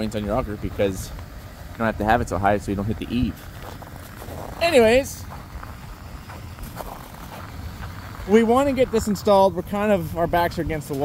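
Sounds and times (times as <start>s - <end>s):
diesel engine idling: 0.0s - 11.0s
footsteps crunching in snow: 2.9s - 9.3s.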